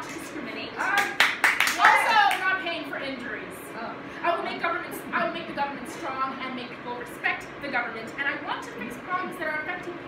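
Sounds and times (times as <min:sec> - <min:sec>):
hands clapping: 0:00.8 - 0:02.4.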